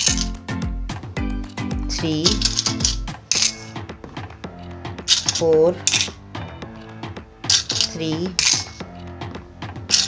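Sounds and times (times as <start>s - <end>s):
coins clinking into bowls: 0.0s - 0.4s, 2.2s - 3.7s, 5.1s - 6.2s, 7.4s - 8.8s
background music: 0.0s - 10.0s.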